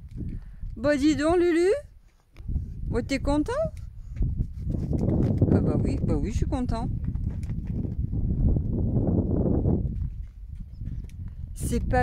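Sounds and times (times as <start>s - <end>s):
small hooves thudding on dirt: 0.0s - 1.1s, 3.6s - 12.0s.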